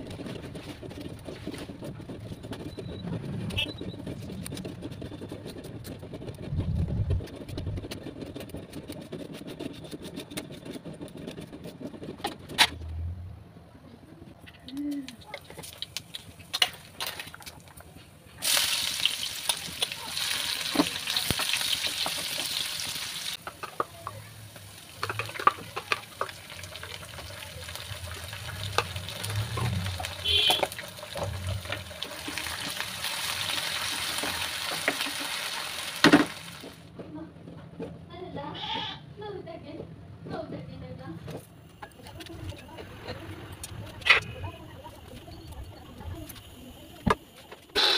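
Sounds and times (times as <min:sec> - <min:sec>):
wooden spatula stirring: 0:00.0 - 0:12.6, 0:19.5 - 0:35.8
onions frying in hot oil: 0:18.4 - 0:36.8.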